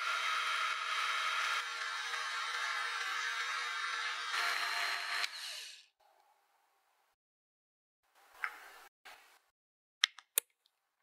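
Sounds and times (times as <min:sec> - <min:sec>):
electric hand mixer whirring: 0:00.0 - 0:05.8.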